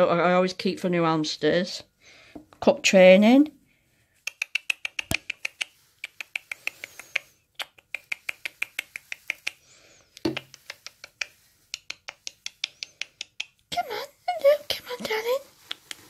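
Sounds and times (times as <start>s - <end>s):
kissing clicks with lips: 4.2s - 13.8s, 15.6s - 16.0s.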